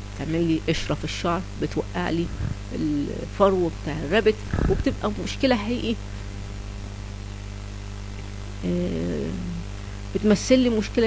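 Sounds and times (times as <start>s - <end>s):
low electrical hum: 0.0s - 11.0s
person making a hesitant hum: 2.2s - 3.3s, 4.4s - 5.3s, 8.6s - 9.7s.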